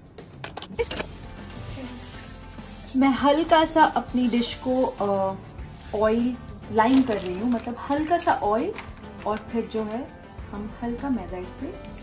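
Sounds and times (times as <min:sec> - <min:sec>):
background music: 0:00.0 - 0:12.0
hand rubbing oil on metal pan: 0:01.7 - 0:06.4.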